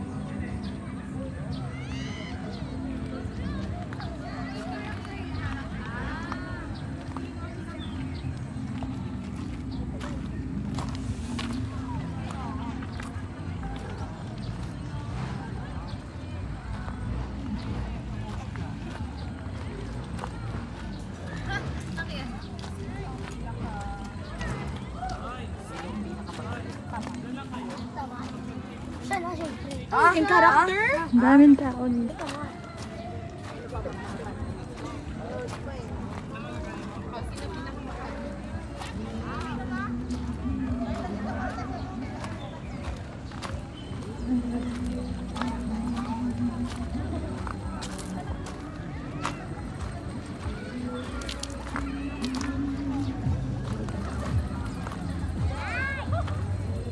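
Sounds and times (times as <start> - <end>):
distant people talking: 0.0 - 56.9
footsteps on gravel: 2.2 - 56.9.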